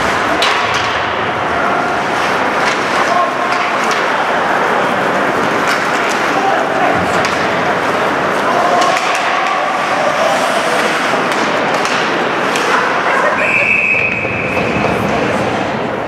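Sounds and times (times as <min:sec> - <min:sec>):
spectators shouting: 0:00.0 - 0:14.7
hockey sticks and puck clacking: 0:00.0 - 0:15.6
referee's whistle blast: 0:13.4 - 0:14.3.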